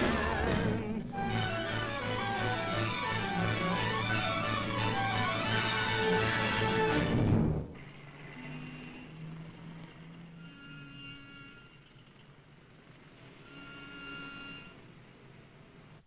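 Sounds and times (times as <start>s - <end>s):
loud orchestral chord: 0.0s - 7.7s
soft held orchestral notes: 0.0s - 12.1s.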